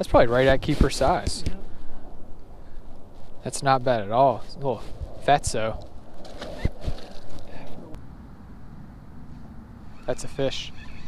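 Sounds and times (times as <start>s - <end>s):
wind and water noise: 0.0s - 11.0s.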